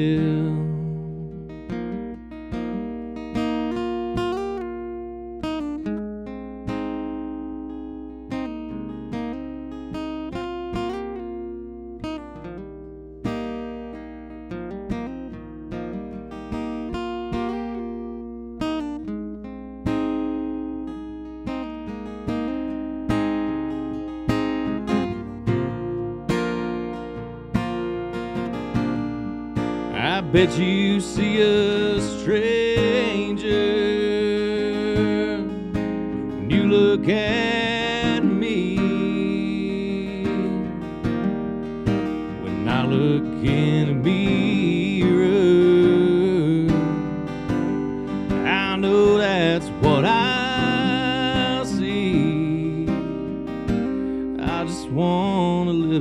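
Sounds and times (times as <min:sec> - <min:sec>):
acoustic guitar picking and strumming: 0:00.0 - 0:56.0.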